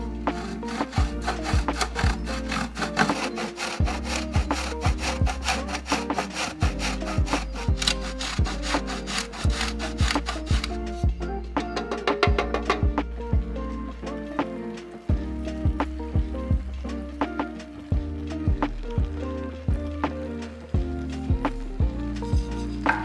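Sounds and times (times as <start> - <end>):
background music with steady beat: 0.0 - 23.0
cheese scraping on metal grater: 0.1 - 10.8.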